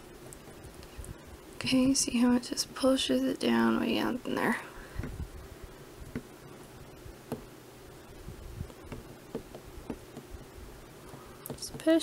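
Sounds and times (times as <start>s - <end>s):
faint steady hum: 0.0s - 12.0s
fingers tapping on clay: 8.7s - 10.3s.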